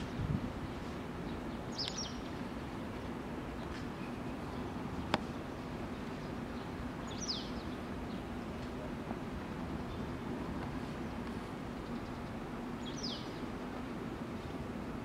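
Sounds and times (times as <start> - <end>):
outdoor background noise: 0.0 - 15.0
small bird chirping: 1.7 - 2.3, 7.0 - 7.8, 11.8 - 13.4.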